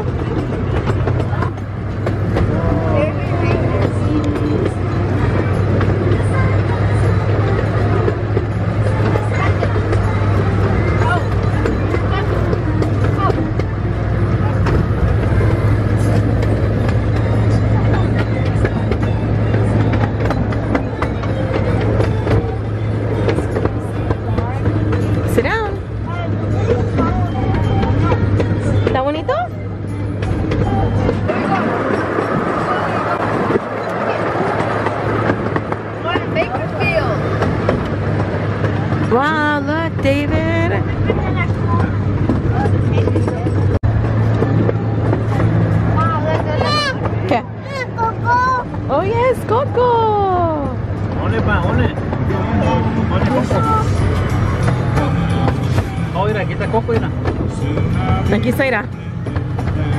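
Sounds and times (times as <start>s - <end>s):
miniature train droning: 0.0s - 59.9s
voices: 0.0s - 59.9s.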